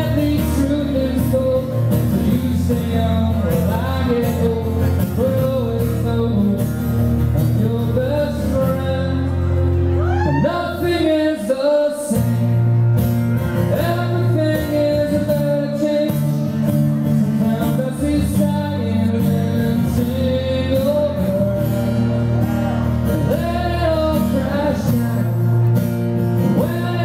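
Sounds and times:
man singing: 0:00.0 - 0:27.0
strummed acoustic guitar: 0:00.0 - 0:27.0.

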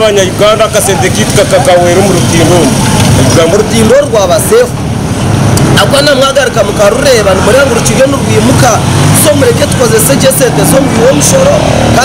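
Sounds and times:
man speaking: 0:00.0 - 0:04.8, 0:05.6 - 0:12.0
road traffic noise: 0:00.0 - 0:12.0.

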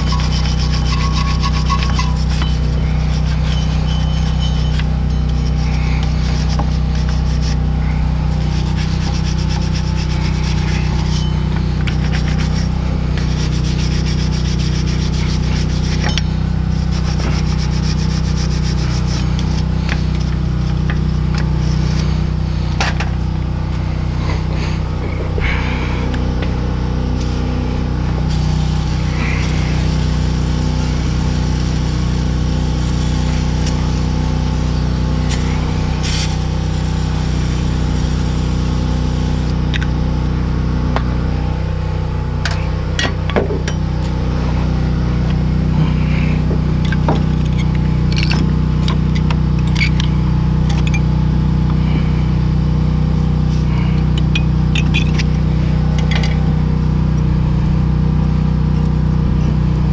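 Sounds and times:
wire brush scrubbing metal: 0:00.0 - 0:22.6, 0:28.2 - 0:39.5
low machine hum: 0:00.0 - 0:59.9.

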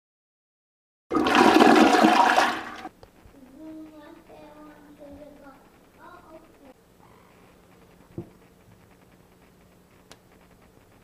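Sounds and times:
toilet flushing: 0:01.1 - 0:02.9.

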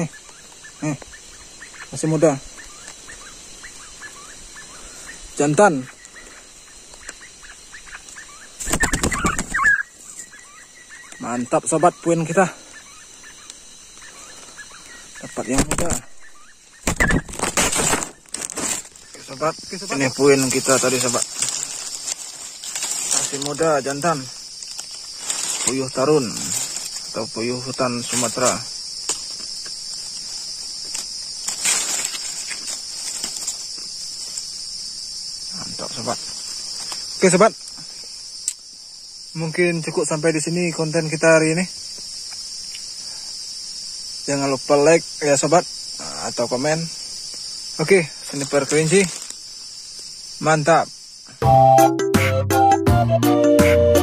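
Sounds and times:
short high bird calls: 0:00.0 - 0:17.3
faint bird chirps: 0:00.0 - 0:30.8
rustle: 0:00.0 - 0:51.4
bird wings flapping: 0:08.6 - 0:09.8, 0:16.8 - 0:19.2.

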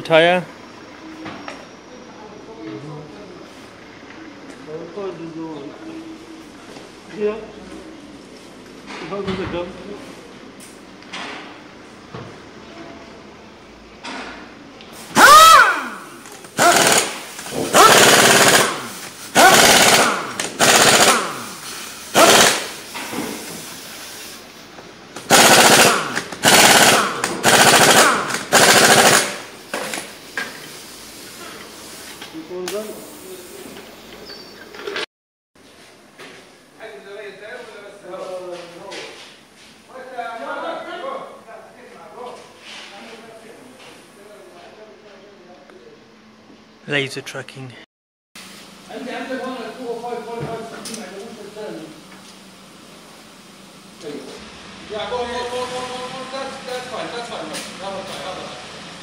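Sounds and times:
pneumatic impact wrench rattling: 0:15.0 - 0:24.4, 0:25.2 - 0:30.6.

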